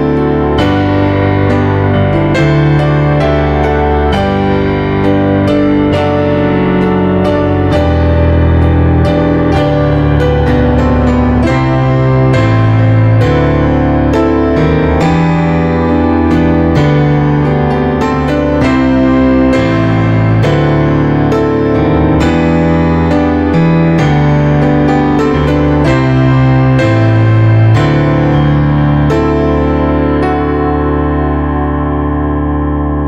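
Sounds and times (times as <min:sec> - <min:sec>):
keyboard playing piano chords: 0:00.0 - 0:33.0.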